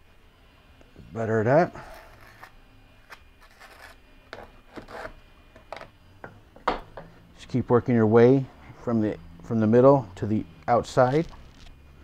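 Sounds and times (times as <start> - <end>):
trowel scraping mortar: 1.8 - 2.5, 3.4 - 4.0.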